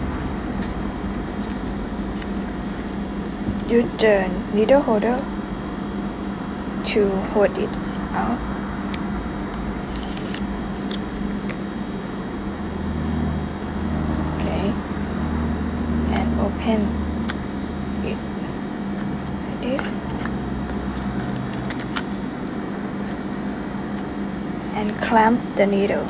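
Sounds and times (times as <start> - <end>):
low room hum: 0.0 - 26.0
packaging being handled: 20.1 - 22.3.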